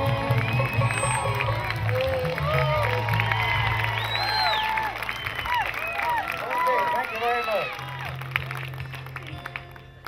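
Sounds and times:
live bluegrass band: 0:00.0 - 0:04.4.

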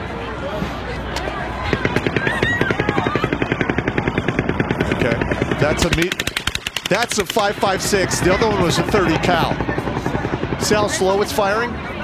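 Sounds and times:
faint voices: 0:00.0 - 0:12.0
automatic gunfire: 0:01.7 - 0:10.8.

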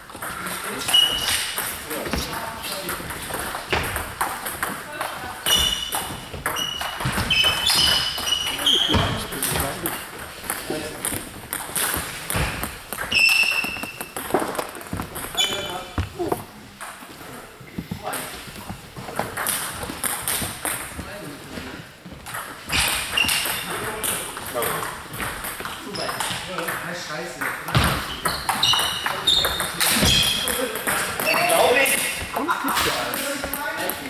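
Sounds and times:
table tennis balls clicking: 0:00.1 - 0:17.0, 0:18.2 - 0:21.0, 0:27.4 - 0:34.0
short high-pitched squeaks: 0:13.1 - 0:14.1.

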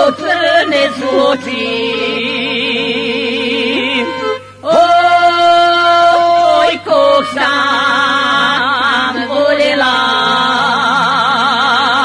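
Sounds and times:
two voices singing folk song: 0:00.0 - 0:12.0.

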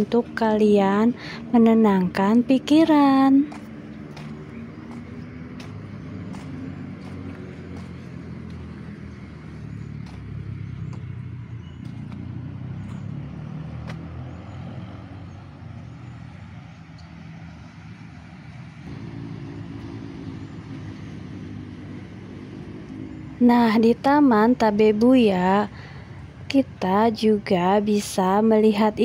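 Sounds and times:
vehicle engine rumble: 0:00.0 - 0:29.0.

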